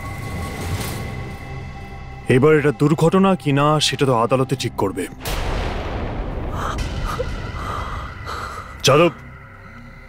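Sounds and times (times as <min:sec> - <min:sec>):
low rumbling sound-effect hit: 0:05.2 - 0:08.2
faint steady drone: 0:06.8 - 0:10.0.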